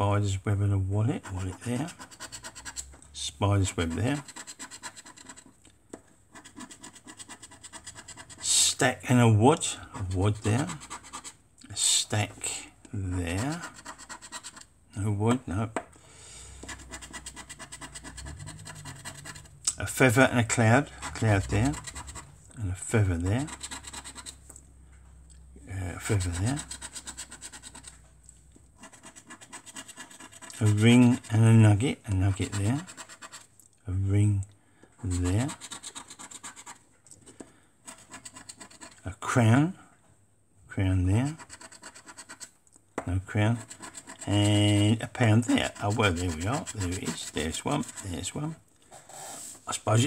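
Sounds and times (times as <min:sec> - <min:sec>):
coin scratching scratchcard: 0:01.2 - 0:02.9, 0:03.6 - 0:05.5, 0:06.3 - 0:08.8, 0:10.0 - 0:11.4, 0:13.1 - 0:14.7, 0:16.6 - 0:19.6, 0:20.8 - 0:22.4, 0:23.0 - 0:24.4, 0:26.0 - 0:28.0, 0:28.8 - 0:31.3, 0:32.3 - 0:33.5, 0:35.1 - 0:36.8, 0:37.9 - 0:39.0, 0:41.2 - 0:42.5, 0:43.5 - 0:48.4
metal bar scraping scratchcard: 0:23.2 - 0:24.4, 0:45.4 - 0:48.2.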